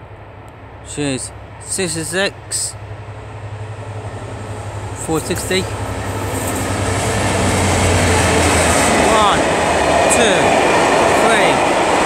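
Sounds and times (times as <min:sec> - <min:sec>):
diesel locomotive engine drone: 0:00.0 - 0:12.0.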